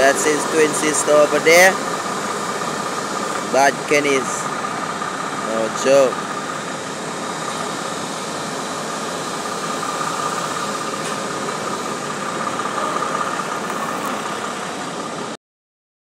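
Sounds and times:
diesel truck engine idling: 0:00.0 - 0:15.4
high whine: 0:00.0 - 0:15.4.

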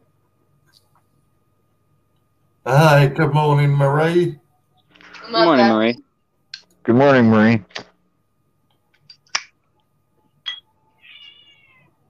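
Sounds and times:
cat meowing: 0:11.0 - 0:12.0.

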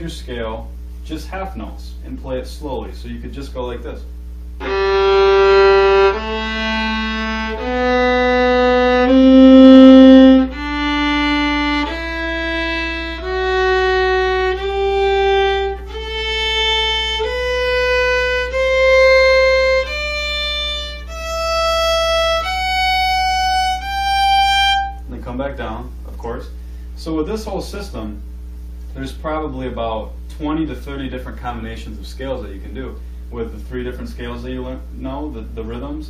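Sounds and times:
violin playing a slow scale: 0:04.6 - 0:25.0.

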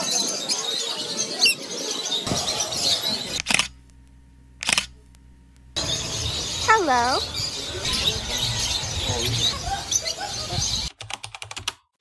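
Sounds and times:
low steady hum: 0:02.3 - 0:09.2
lovebirds chattering and chirping: 0:05.8 - 0:10.9.

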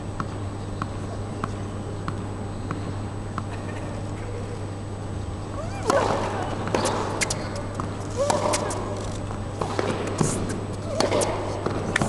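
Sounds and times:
arena hum: 0:00.0 - 0:12.0
tennis ball bouncing: 0:05.5 - 0:12.0.

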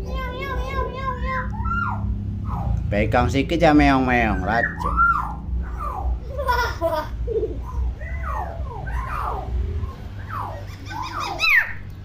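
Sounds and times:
myna whistled calls: 0:04.3 - 0:06.2, 0:07.6 - 0:11.9.

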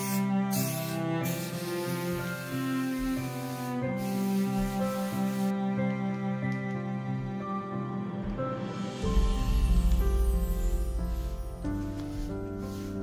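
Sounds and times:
aerosol spray hissing: 0:00.0 - 0:05.5, 0:10.7 - 0:13.0
gentle music with bowed strings: 0:00.0 - 0:13.0.

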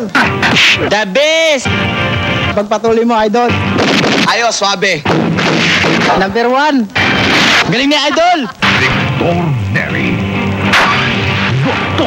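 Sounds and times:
loud gunfire: 0:03.7 - 0:06.3, 0:07.0 - 0:07.7.

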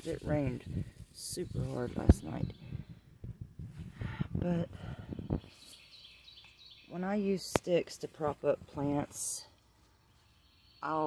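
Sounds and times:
small bird singing: 0:00.2 - 0:03.1, 0:05.1 - 0:07.6, 0:09.2 - 0:11.0.

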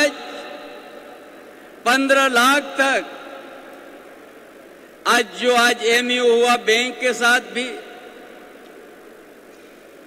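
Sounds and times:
hall room noise hiss: 0:00.0 - 0:10.0.

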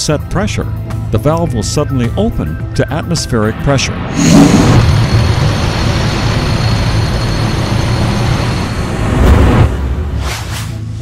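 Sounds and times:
deep rumble: 0:03.4 - 0:10.2.

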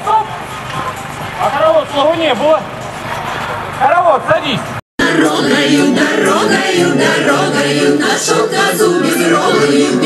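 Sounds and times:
group of voices singing: 0:05.0 - 0:10.0.

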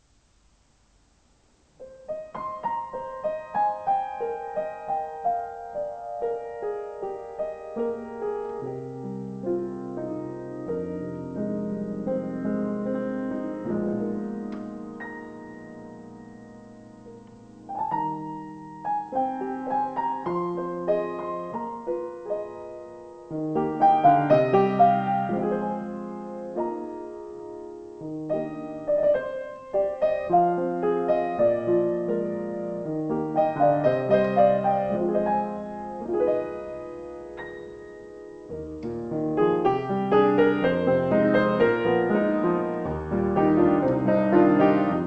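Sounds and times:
slow grand piano melody: 0:01.5 - 0:45.0.

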